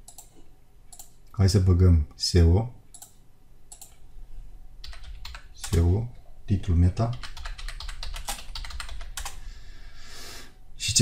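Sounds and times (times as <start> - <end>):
keyboard typing: 4.8 - 6.0, 7.0 - 9.4.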